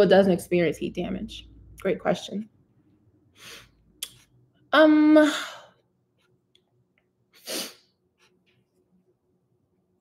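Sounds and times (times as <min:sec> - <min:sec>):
person sharp breath: 0:03.4 - 0:03.8, 0:07.4 - 0:07.8.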